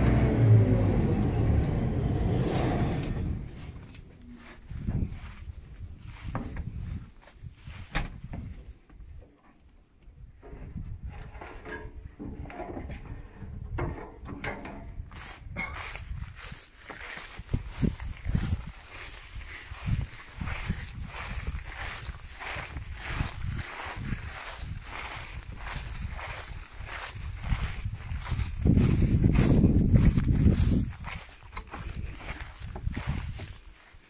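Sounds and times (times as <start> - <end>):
wind rumbling on microphone: 0.0 - 9.2, 10.1 - 34.0
footsteps through dry stubble: 2.2 - 8.8, 15.0 - 34.0
footsteps on metal steps: 13.7 - 34.0.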